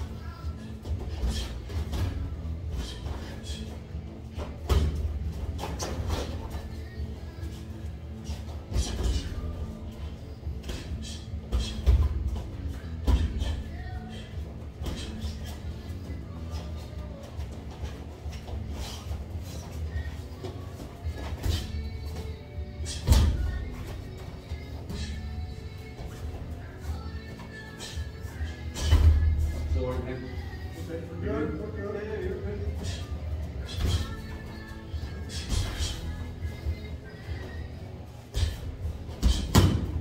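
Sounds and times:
gloved punches landing: 39.3 - 40.0.

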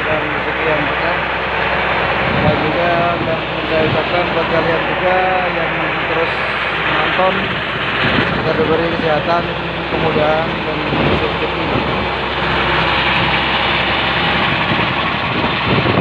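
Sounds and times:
faint voices: 0.0 - 7.6, 8.2 - 15.8
boat engine running: 0.0 - 16.0
wind and water rushing: 0.0 - 16.0.

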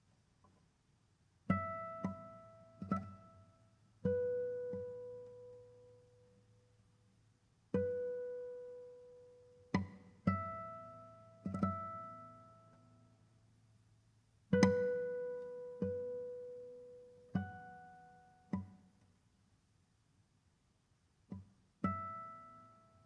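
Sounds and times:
classical guitar plucked notes: 1.5 - 6.6, 7.7 - 13.1, 14.5 - 18.8, 21.3 - 23.0.

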